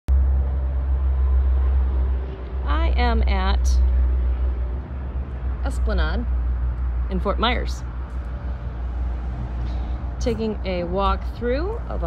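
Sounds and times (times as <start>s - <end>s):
low rumble: 0.1s - 12.0s.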